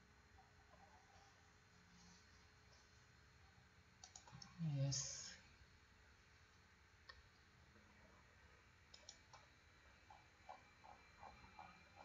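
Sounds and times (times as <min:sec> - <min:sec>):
computer mouse clicks: 0:04.0 - 0:04.5, 0:08.9 - 0:09.5, 0:10.1 - 0:12.0.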